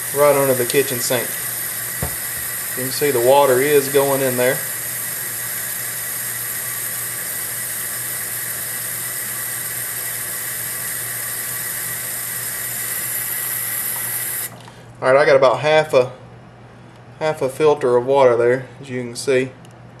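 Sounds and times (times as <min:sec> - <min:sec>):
faucet running into funnel: 0:00.0 - 0:14.7.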